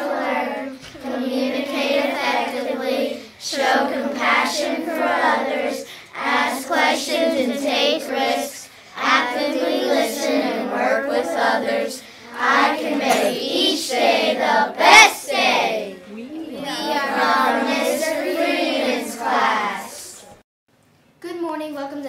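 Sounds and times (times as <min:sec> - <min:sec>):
children singing in unison: 0:00.0 - 0:15.9, 0:16.6 - 0:20.2.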